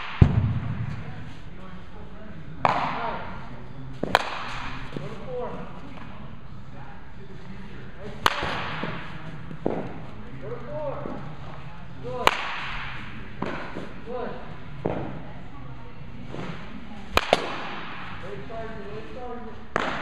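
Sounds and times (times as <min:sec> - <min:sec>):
bat cracking a baseball: 0:00.0 - 0:01.0, 0:08.2 - 0:09.0, 0:17.1 - 0:18.2, 0:19.7 - 0:20.0.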